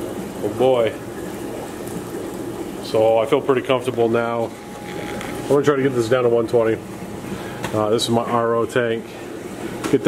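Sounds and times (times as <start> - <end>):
pump humming: 0.0 - 10.0
water running into tank: 0.0 - 10.0.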